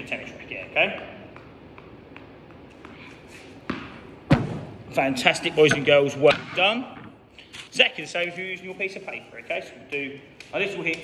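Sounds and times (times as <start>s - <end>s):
tennis ball thuds: 0.8s - 4.9s.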